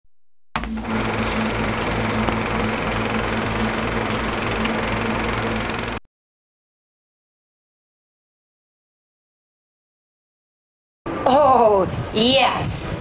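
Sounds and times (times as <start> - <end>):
low hum: 0.1 - 6.0
machine-like whirring noise: 0.6 - 6.0.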